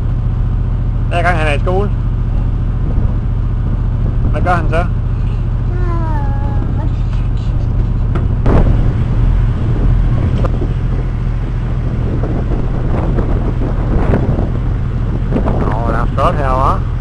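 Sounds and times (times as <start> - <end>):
boat engine droning: 0.0 - 17.0.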